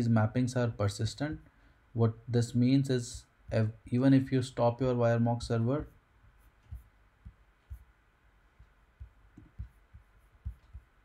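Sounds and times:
faint dull low thumps: 0:02.3 - 0:11.0.

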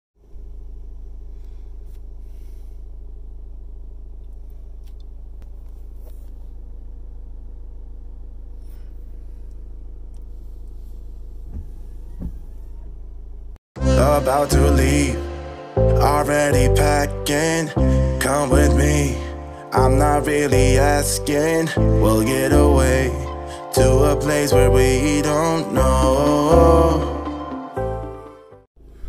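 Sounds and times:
car engine idling: 0:00.2 - 0:26.2
faint short squeaks: 0:10.5 - 0:13.2.

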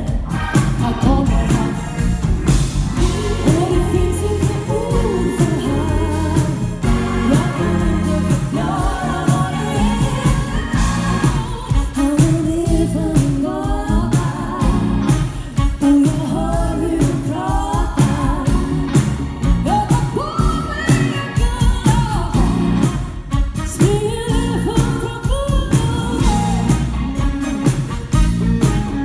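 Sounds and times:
woman singing: 0:00.0 - 0:02.0, 0:03.0 - 0:27.0
live funk band playing: 0:00.0 - 0:29.0.

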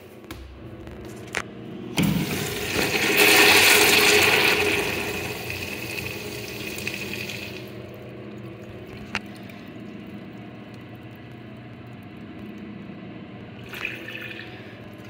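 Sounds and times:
urinal flushing water rush: 0:02.0 - 0:11.1, 0:13.5 - 0:15.0.

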